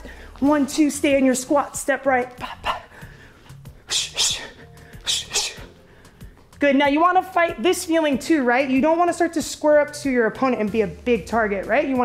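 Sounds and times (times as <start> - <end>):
workout music with steady beat: 0.0 - 12.0
sharp hissing exhalations: 2.9 - 6.5.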